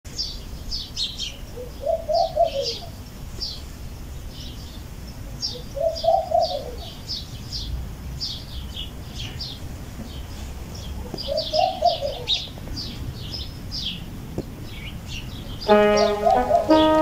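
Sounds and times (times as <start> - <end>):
small birds chirping: 0.1 - 17.0
dove cooing: 1.6 - 3.0, 5.5 - 7.0, 11.0 - 12.5, 15.7 - 17.0.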